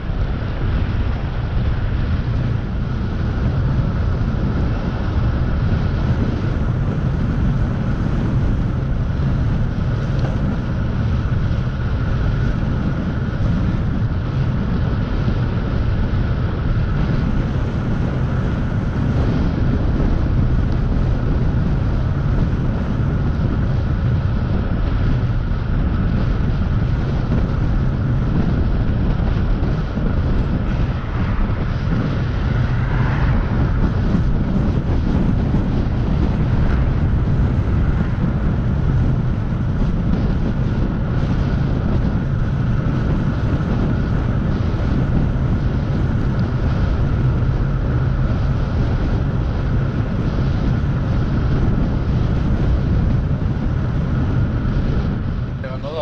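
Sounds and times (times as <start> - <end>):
wind rumbling on microphone: 0.0 - 56.0.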